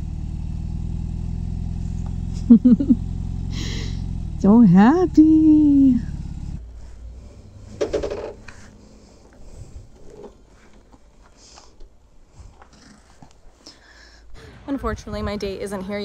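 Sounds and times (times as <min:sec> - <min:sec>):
motorcycle engine idling: 0:00.0 - 0:09.4.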